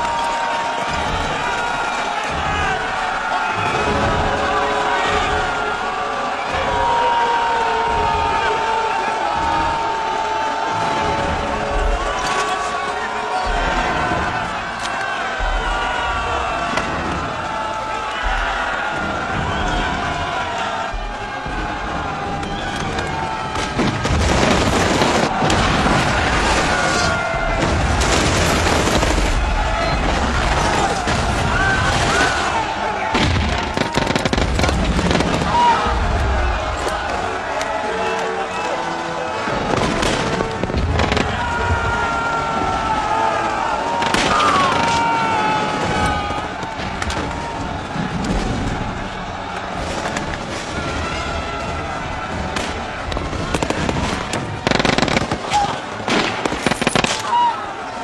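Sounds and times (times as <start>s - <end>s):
orchestral film score: 0.0s - 58.0s
soldiers shouting: 0.0s - 58.0s
explosions: 18.2s - 37.0s, 39.5s - 42.0s, 45.6s - 57.3s
rapid gunfire: 23.5s - 35.8s, 52.3s - 57.3s.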